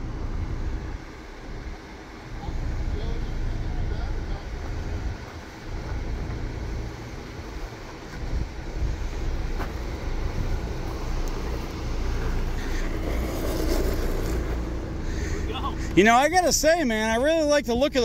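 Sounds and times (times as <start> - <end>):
engine running at low revs: 0.0 - 17.0
faint constant hum: 0.0 - 18.0.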